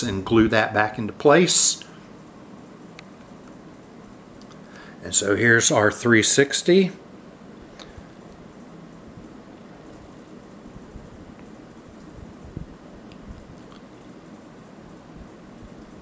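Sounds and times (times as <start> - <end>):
faint hum and hiss: 0.0 - 16.0.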